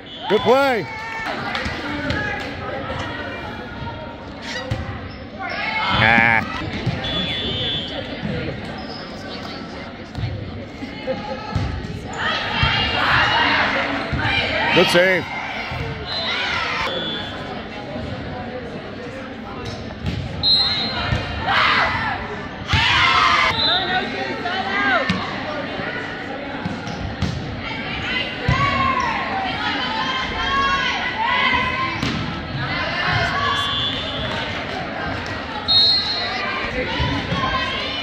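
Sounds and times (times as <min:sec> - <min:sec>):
people calling out: 0:05.7 - 0:08.0.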